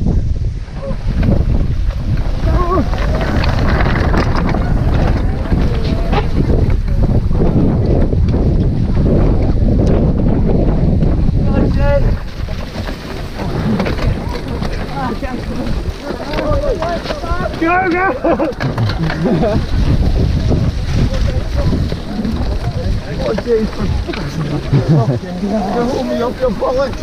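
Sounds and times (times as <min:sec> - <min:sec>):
bike tyres rumbling over grass: 0:00.0 - 0:27.0
wind buffeting microphone: 0:00.0 - 0:27.0
riders shouting and whooping: 0:02.3 - 0:06.9, 0:14.0 - 0:27.0.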